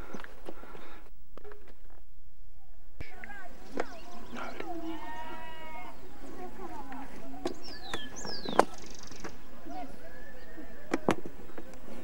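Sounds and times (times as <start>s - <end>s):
drawn-out animal call: 4.0s - 7.2s.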